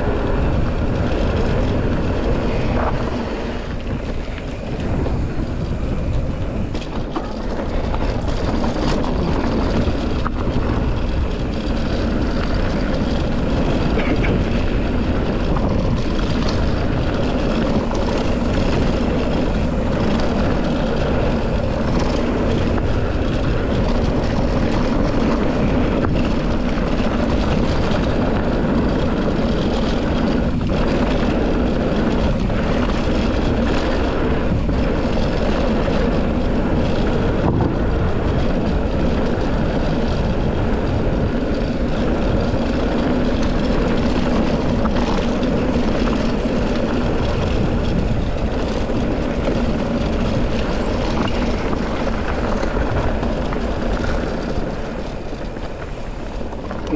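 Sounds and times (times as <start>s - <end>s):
bike tyres rolling on gravel: 0.0s - 56.9s
wind rushing over microphone: 0.0s - 56.9s.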